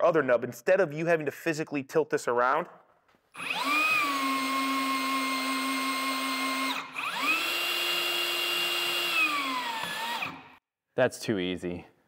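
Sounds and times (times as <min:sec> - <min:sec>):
electric motor whining: 0:03.4 - 0:10.6.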